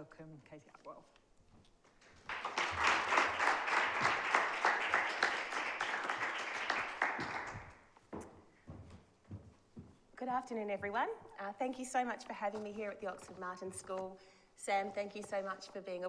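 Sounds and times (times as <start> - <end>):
audience applauding: 2.1 - 7.9.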